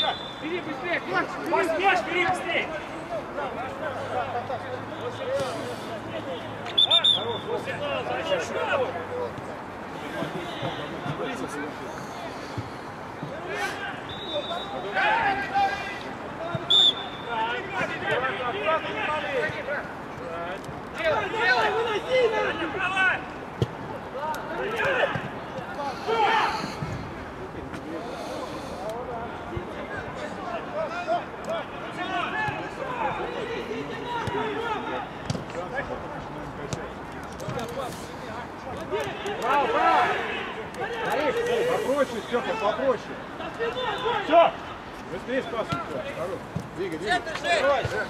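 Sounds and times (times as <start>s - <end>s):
players shouting and calling: 0.0s - 48.0s.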